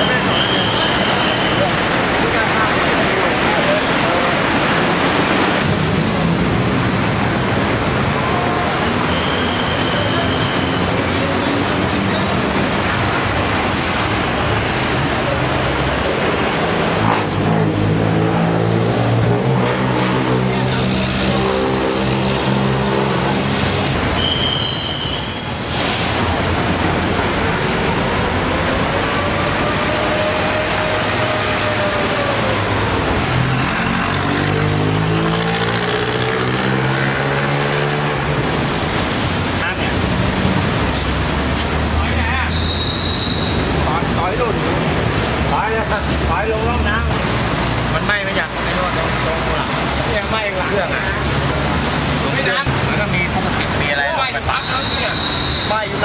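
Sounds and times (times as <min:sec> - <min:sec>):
fire hose spraying water: 0:00.0 - 0:56.0.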